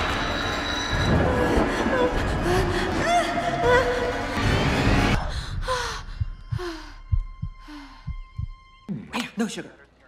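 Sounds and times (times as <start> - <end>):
low heartbeat thuds: 5.2 - 9.1.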